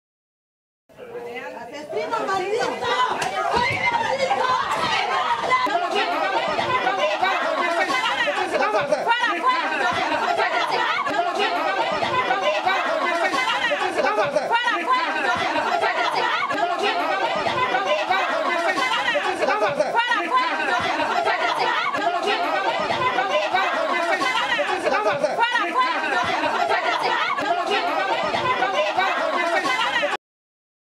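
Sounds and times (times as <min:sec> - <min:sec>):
crowd yelling and shouting: 0:02.0 - 0:30.2.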